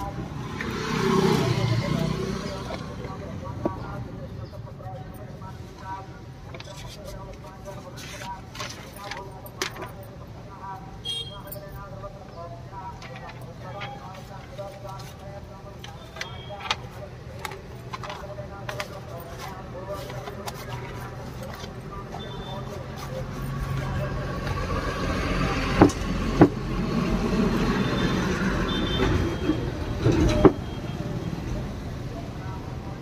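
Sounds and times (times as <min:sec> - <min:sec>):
faint background voices: 0:00.0 - 0:33.0
vehicle engine rumble: 0:00.0 - 0:33.0
paper crinkling and rustling: 0:06.6 - 0:09.9, 0:13.0 - 0:24.0.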